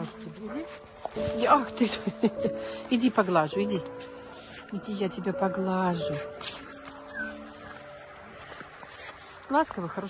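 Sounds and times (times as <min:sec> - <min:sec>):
dog whining: 0:07.0 - 0:07.8.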